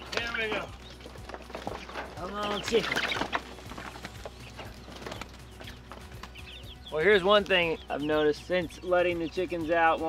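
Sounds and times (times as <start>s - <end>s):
pattering and rustling: 0.0s - 6.7s
chickens flapping wings: 0.0s - 7.8s.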